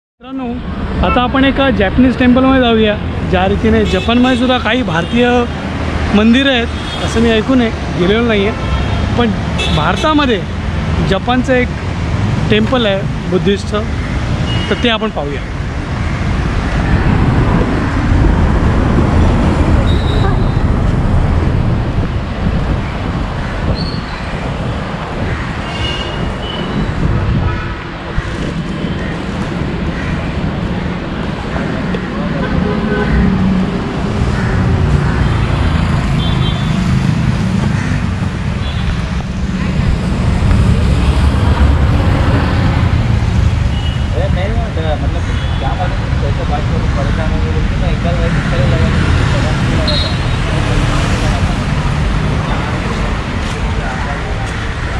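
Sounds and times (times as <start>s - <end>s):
passing vehicles rumble: 0.2s - 54.9s.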